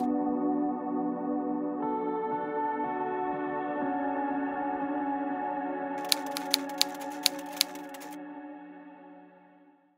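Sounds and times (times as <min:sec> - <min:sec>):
typewriter key clicks: 0:06.0 - 0:08.2.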